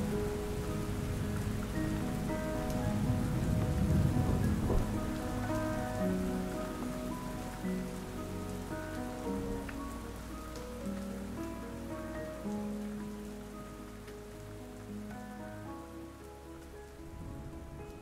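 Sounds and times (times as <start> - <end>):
soft background music: 0.0 - 18.0
steady rain falling: 0.0 - 18.0.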